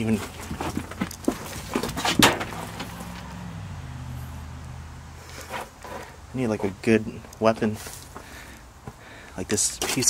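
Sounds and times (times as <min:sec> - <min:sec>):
debris knocking and clattering: 0:00.3 - 0:03.0.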